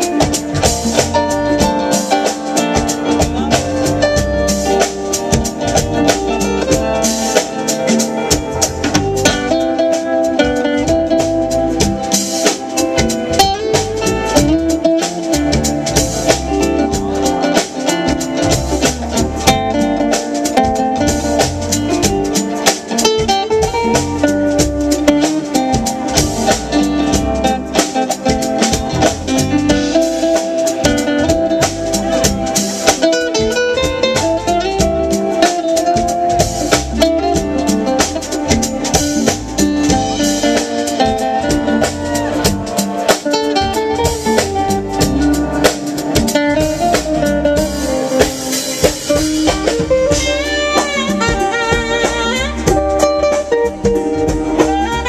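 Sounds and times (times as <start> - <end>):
acoustic guitar melody: 0.0 - 55.0
drum kit: 0.0 - 55.0
smooth jazz band: 0.0 - 55.0.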